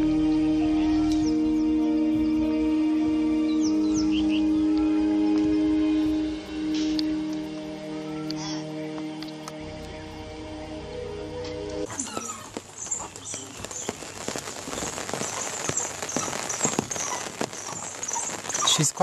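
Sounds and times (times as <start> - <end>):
sustained musical chord: 0.0 - 11.9
high pulsing hiss: 0.0 - 19.0.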